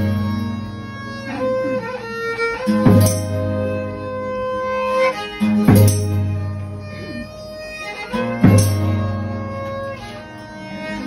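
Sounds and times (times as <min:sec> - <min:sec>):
bowed violin: 0:00.0 - 0:11.0
strummed guitars: 0:00.0 - 0:11.0.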